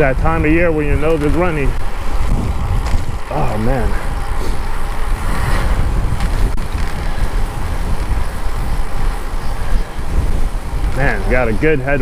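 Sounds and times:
street traffic: 0.0s - 12.0s
wind noise on microphone: 0.0s - 12.0s.

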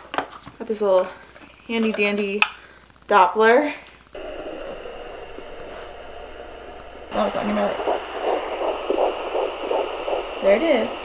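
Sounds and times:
steady hiss: 3.9s - 11.0s
whooshing fetal heartbeat: 4.2s - 11.0s.

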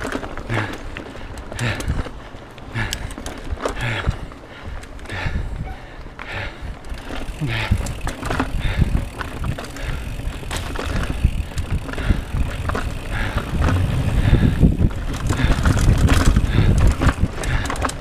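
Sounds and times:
bike clicks and rattles: 0.0s - 18.0s
bike tyres rumbling over ground: 0.0s - 18.0s
wind buffeting microphone: 1.5s - 18.0s.

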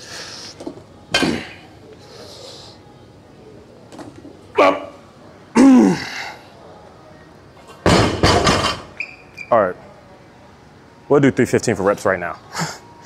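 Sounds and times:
barbell thudding on platform: 7.8s - 8.9s.

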